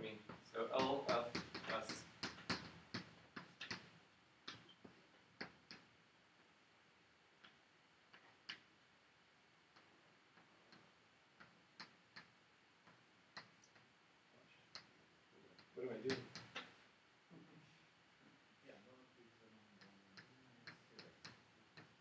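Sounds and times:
small clicks and taps: 0.2s - 5.9s, 7.4s - 8.7s, 9.7s - 14.0s, 14.6s - 16.9s, 19.8s - 22.0s.

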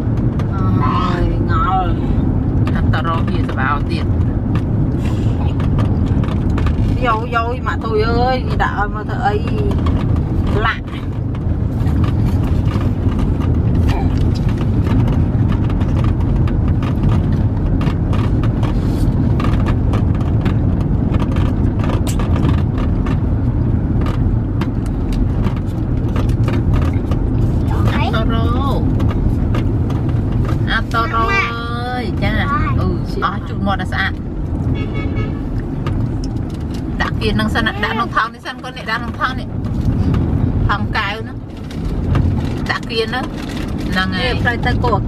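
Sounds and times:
car road and engine rumble: 0.0s - 45.0s
person speaking: 30.7s - 33.3s, 43.9s - 45.0s.

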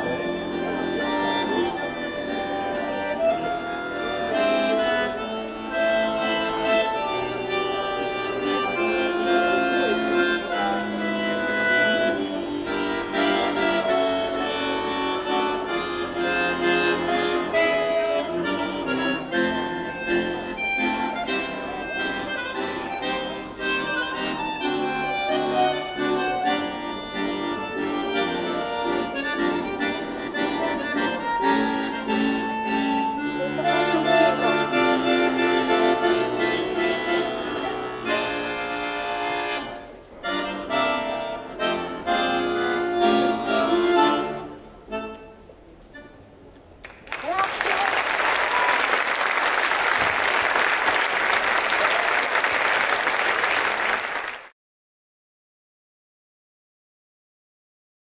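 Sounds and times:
button accordion solo tune: 0.0s - 46.3s
audience applauding: 46.8s - 54.5s.

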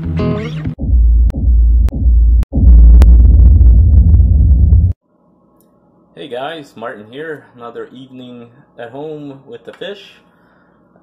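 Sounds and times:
loud deep rumble: 0.8s - 5.0s.

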